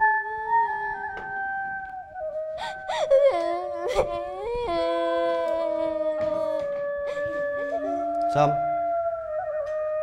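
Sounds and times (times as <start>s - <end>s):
slow music with held notes: 0.0s - 10.0s
girl crying and wailing: 2.6s - 8.9s.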